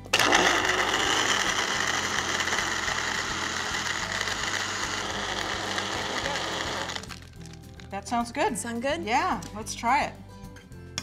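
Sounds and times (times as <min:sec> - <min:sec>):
blender whirring: 0:00.0 - 0:07.2.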